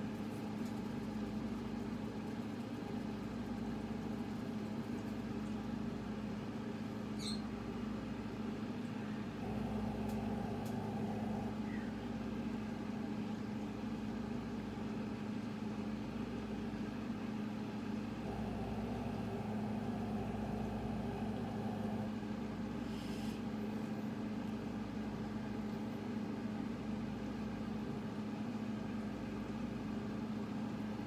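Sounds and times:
steady low hum: 0.0s - 31.0s
faint short high chirp: 7.2s - 7.5s.

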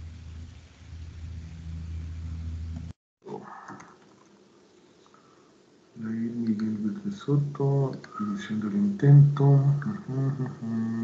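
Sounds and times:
low steady hum: 0.0s - 11.0s
brief voice-like sound: 3.3s - 4.0s.

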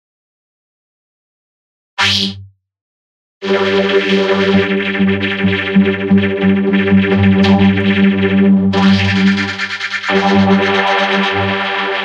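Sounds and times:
loud distorted pitched sound: 3.6s - 12.0s.

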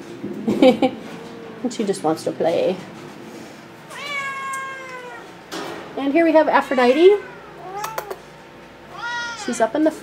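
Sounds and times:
cat meowing: 3.9s - 5.3s, 6.6s - 8.2s, 8.9s - 9.7s.

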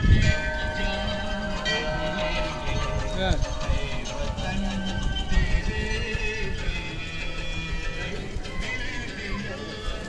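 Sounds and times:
temple bell ringing: 0.0s - 8.2s.

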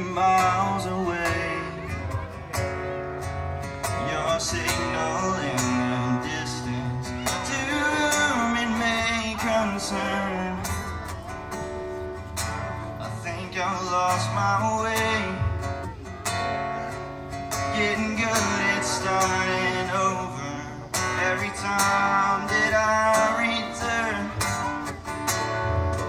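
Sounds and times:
acoustic guitar strumming: 0.0s - 26.0s
person singing: 3.9s - 11.6s
box drum beat: 15.0s - 16.2s.

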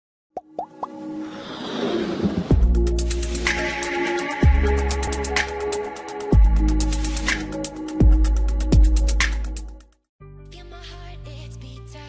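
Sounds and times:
swelling riser: 0.9s - 6.8s.

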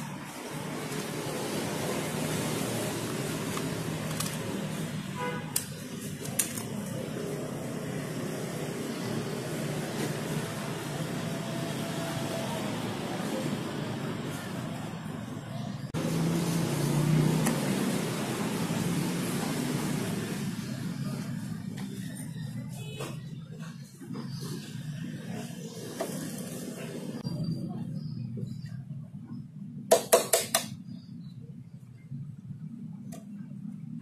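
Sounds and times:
motor vehicle rumble: 0.0s - 29.8s.

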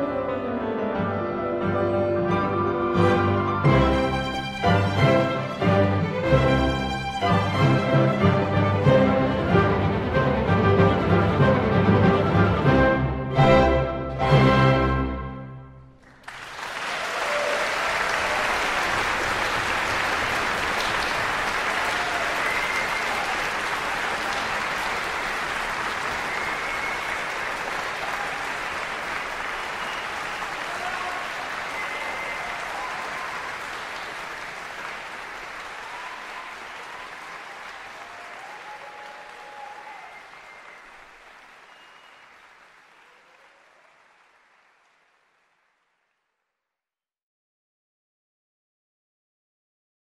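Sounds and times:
audience applauding: 16.0s - 46.4s.

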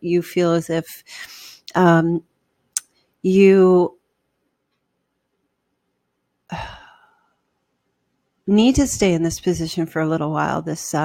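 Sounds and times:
woman sighing: 6.5s - 7.3s.

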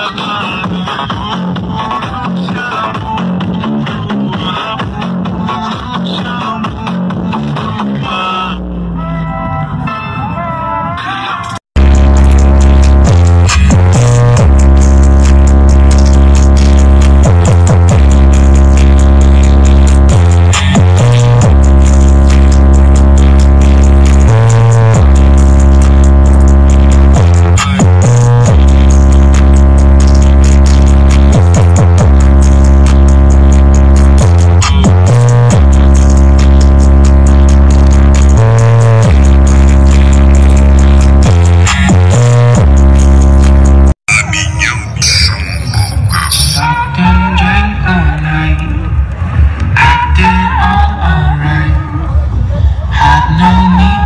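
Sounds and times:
loud electronic music with deep bass: 0.0s - 54.0s.

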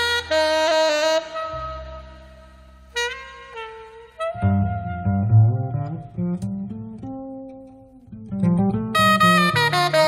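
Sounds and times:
saxophone phrases: 0.0s - 6.9s, 8.6s - 10.0s
pizzicato double bass: 4.4s - 7.1s.

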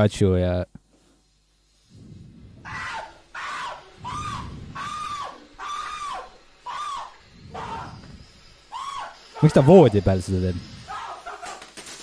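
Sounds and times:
man screaming: 2.6s - 8.0s, 8.7s - 10.0s, 10.9s - 11.5s
firework fountain going off: 8.7s - 12.0s.

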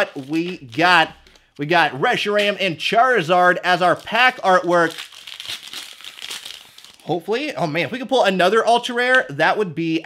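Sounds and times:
foil wrapper crinkling: 0.0s - 1.5s, 3.8s - 7.3s.

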